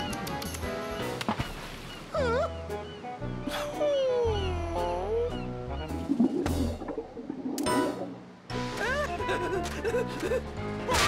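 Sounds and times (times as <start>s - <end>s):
cartoon background music: 2.1s - 11.0s.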